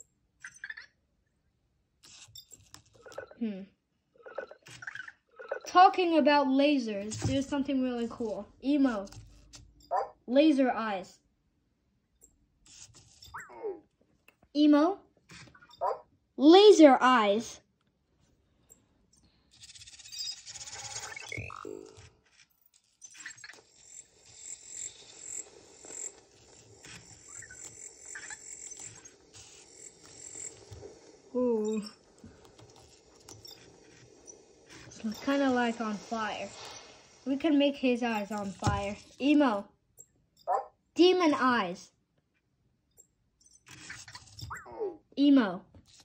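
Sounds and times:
high-pitched electronic chirps and zaps: 19.6 - 22.0, 22.8 - 39.3.

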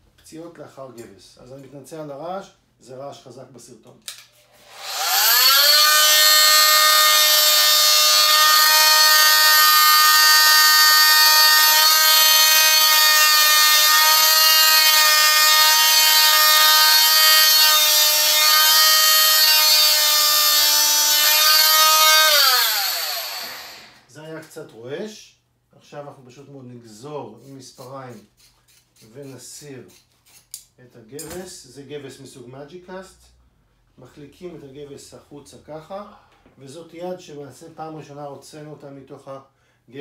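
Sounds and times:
electric cast saw whining: 4.6 - 24.0.

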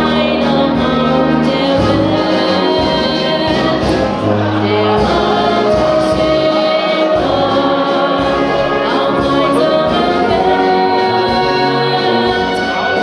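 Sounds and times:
tuba bass notes: 0.0 - 13.0
wind band playing: 0.0 - 13.0
woman singing into a microphone: 0.0 - 13.0.

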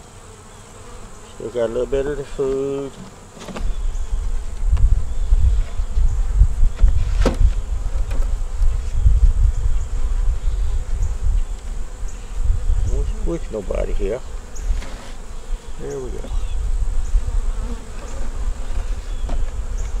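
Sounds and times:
honeybees buzzing: 0.0 - 20.0
wind rumble on microphone: 3.6 - 14.8, 15.4 - 20.0.

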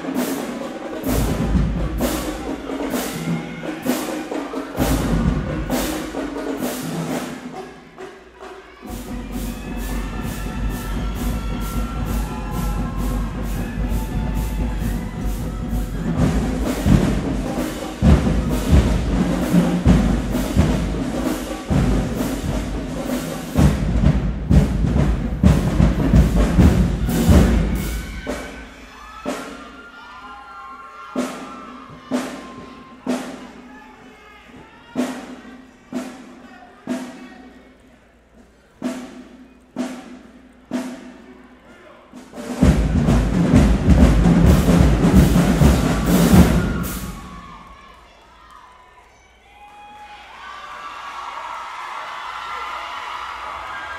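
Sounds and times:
marching band playing: 0.0 - 29.8, 38.8 - 41.3, 42.1 - 47.9.

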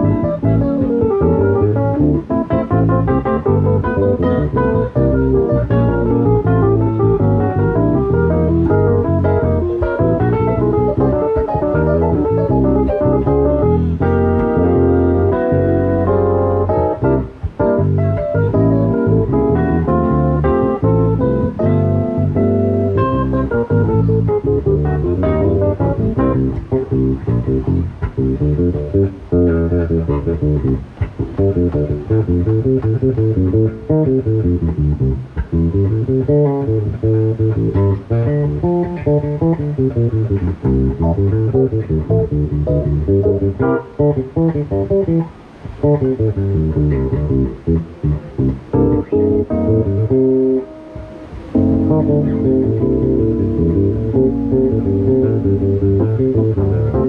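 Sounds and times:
electric bass guitar playing: 0.0 - 57.0
stage piano: 0.0 - 57.0.

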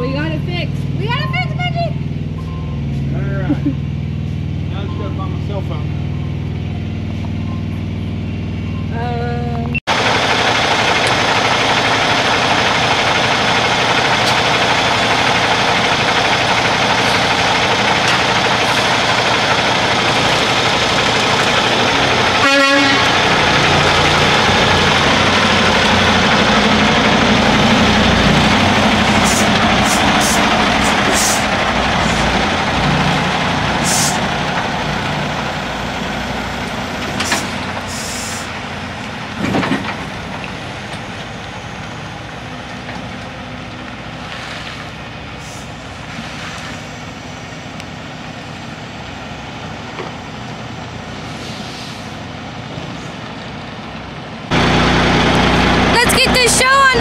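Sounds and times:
diesel truck engine running: 0.0 - 57.0.

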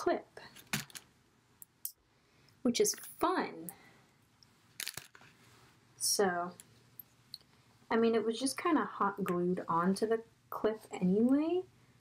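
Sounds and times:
crunchy handling noise: 0.5 - 1.1, 4.7 - 5.5.

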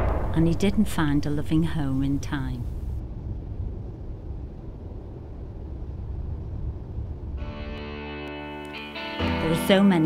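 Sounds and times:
low rumbling noise: 0.0 - 8.9.

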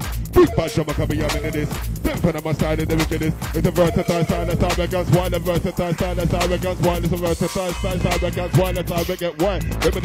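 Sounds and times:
grime instrumental with deep bass: 0.0 - 10.0
person rapping fast: 0.0 - 10.0.

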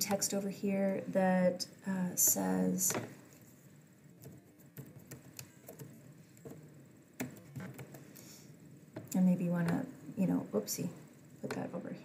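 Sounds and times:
low room noise: 0.0 - 12.0
computer keyboard typing: 4.2 - 6.6, 7.2 - 8.0.

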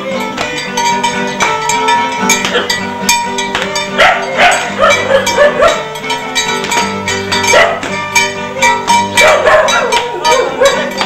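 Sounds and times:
dog barking: 2.5 - 2.7, 4.0 - 5.9, 7.5 - 7.9, 9.2 - 11.0.

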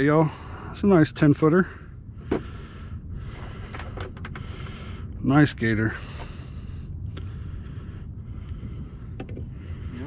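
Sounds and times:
wind rumbling on microphone: 0.4 - 10.0.

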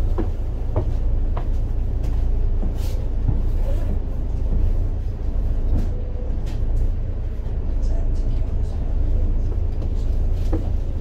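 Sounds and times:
bus diesel engine rumble: 0.0 - 11.0.

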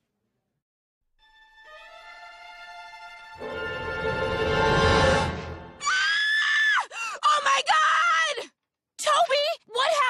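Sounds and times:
woman screaming: 5.8 - 10.0.

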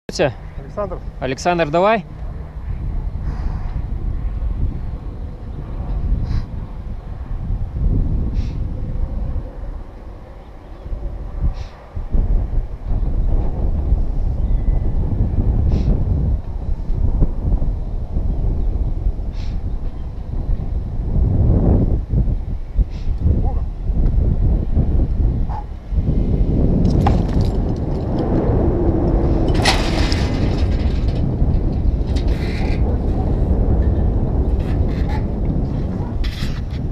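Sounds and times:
wind buffeting microphone: 0.1 - 36.9.

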